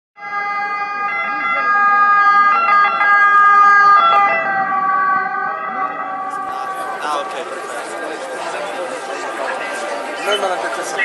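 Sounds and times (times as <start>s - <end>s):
ambulance siren: 0.2s - 11.0s.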